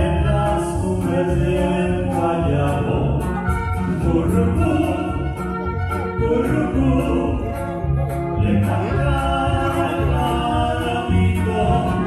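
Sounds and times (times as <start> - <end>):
men singing into microphones: 0.0 - 5.5, 6.1 - 12.0
amplified band accompaniment: 0.0 - 12.0.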